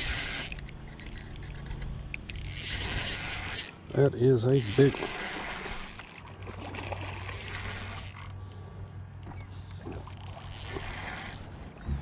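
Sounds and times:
fishing reel whirring: 0.0 - 8.6, 10.0 - 11.6.

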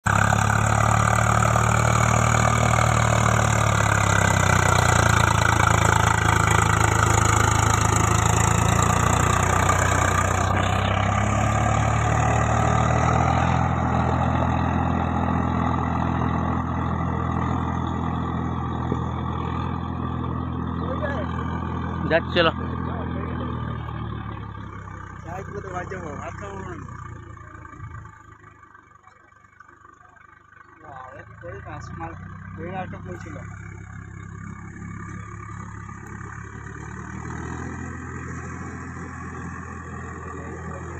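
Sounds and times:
tractor diesel engine drone: 0.0 - 40.9.

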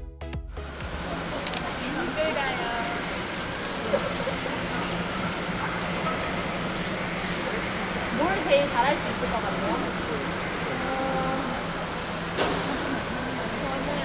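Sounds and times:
indistinct crowd chatter: 0.7 - 14.0.

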